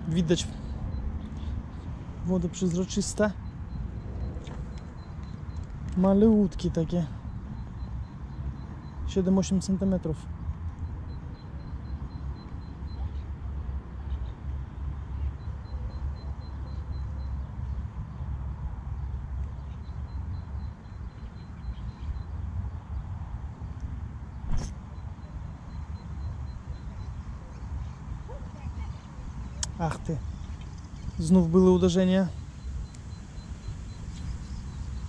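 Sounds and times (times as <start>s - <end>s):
sharp click: 24.5s - 24.8s.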